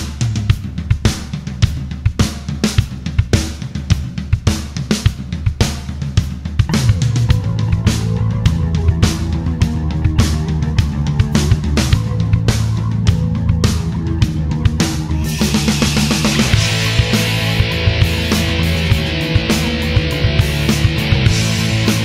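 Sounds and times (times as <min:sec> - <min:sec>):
drum kit driving beat: 0:00.0 - 0:22.0
instrumental rock music: 0:00.0 - 0:22.0
electric guitar: 0:06.7 - 0:22.0
low bass line: 0:06.7 - 0:22.0.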